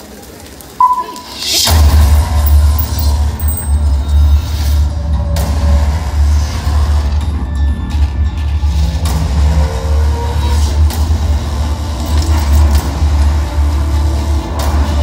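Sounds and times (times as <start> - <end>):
bass-heavy music over sound system: 1.0 - 10.2.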